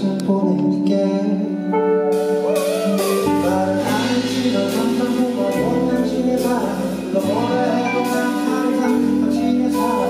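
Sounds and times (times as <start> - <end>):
person singing: 0.0 - 10.0
bass line: 2.0 - 10.0
guitar chords: 2.0 - 10.0.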